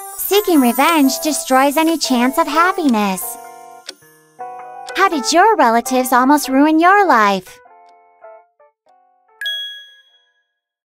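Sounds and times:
soft background music: 0.0 - 9.7
bright chime ding: 9.4 - 10.4.

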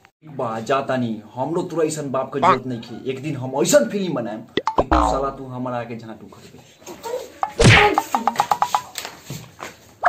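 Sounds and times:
loud whack of a blow: 7.6 - 8.1.

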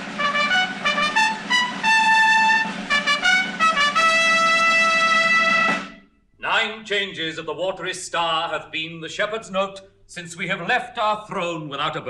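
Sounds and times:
brass fanfare with trumpets: 0.0 - 6.0.

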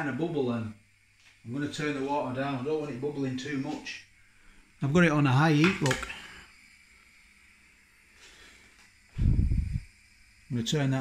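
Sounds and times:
gas burner hissing: 0.0 - 11.0.

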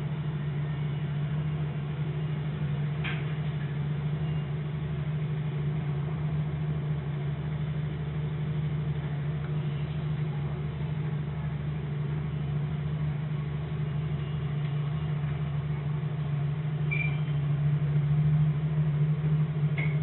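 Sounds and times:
car engine idling: 0.0 - 20.0.

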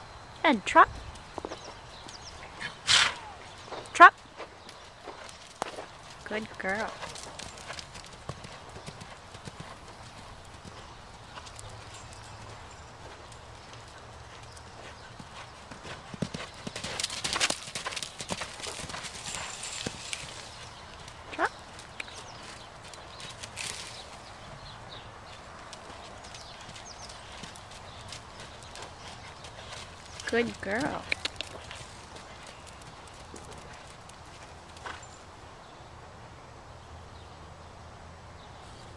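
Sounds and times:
horse hoofbeats on sand: 0.9 - 35.2.

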